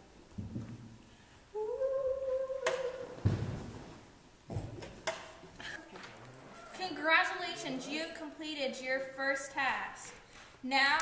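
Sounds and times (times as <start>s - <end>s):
person humming a held note: 1.6s - 3.2s.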